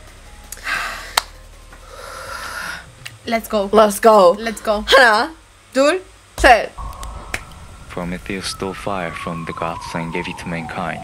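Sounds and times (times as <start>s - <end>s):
high electronic tone: 6.8s - 10.4s.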